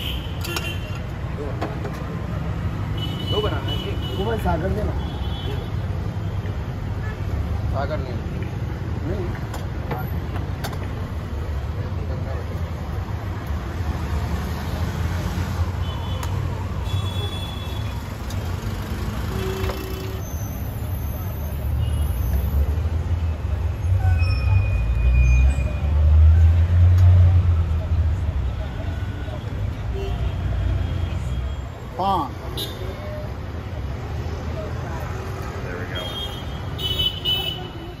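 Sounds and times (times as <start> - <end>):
city traffic rumble: 0.0 - 38.0.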